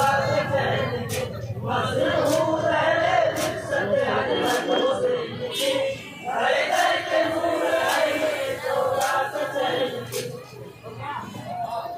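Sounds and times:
men chanting in unison: 0.0 - 10.5.

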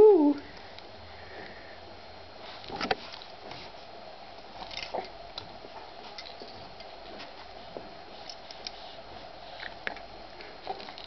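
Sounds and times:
baby cooing: 0.0 - 0.4.

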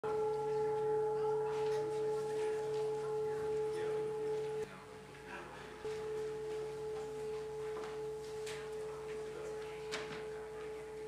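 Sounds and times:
steady held tone: 0.0 - 5.0, 5.8 - 11.0.

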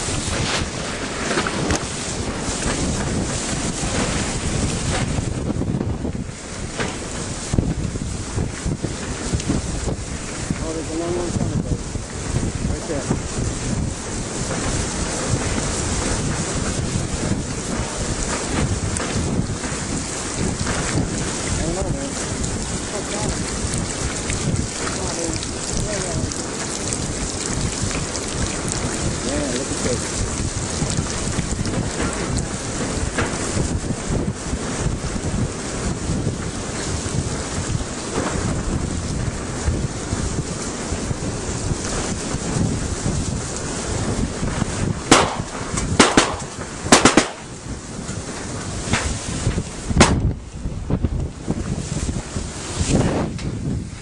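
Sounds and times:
rumbling and rustling microphone noise: 0.0 - 54.0.

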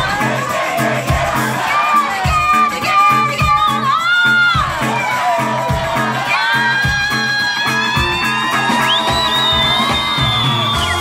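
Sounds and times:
crowd whooping: 0.0 - 11.0
funk brass band playing: 0.0 - 11.0.

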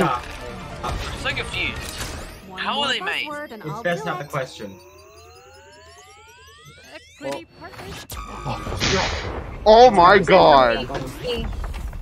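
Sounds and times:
rising electronic whine: 2.3 - 9.8.

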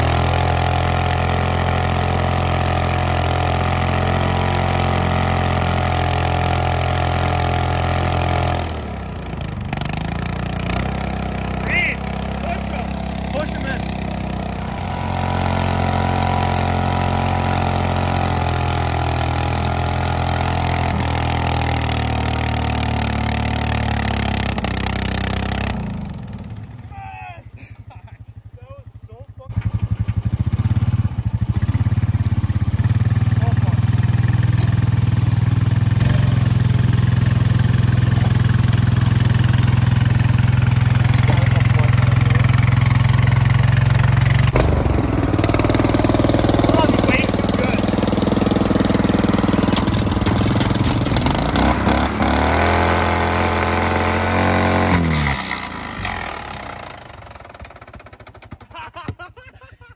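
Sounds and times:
small engine running: 0.0 - 27.0, 29.5 - 58.9.

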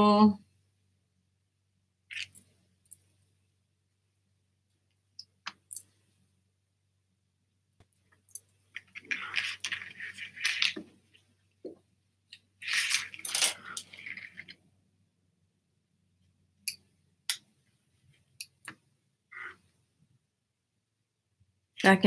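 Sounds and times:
rummaging through art supplies: 8.4 - 11.4, 12.4 - 14.7.

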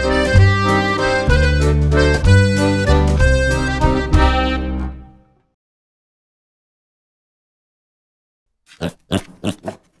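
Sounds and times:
cartoon pig oinking: 8.7 - 10.0.

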